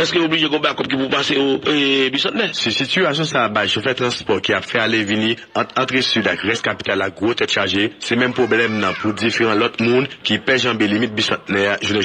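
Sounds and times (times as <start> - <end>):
man speaking on radio news: 0.0 - 12.0.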